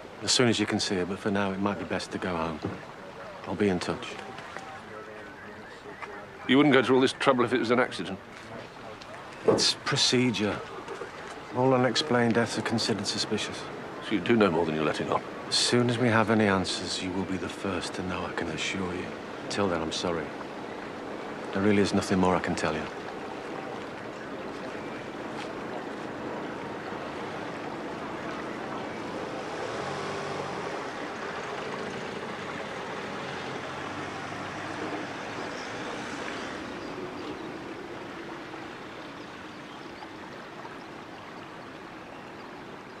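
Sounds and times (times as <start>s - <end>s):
vehicle passing: 26.6s - 39.1s.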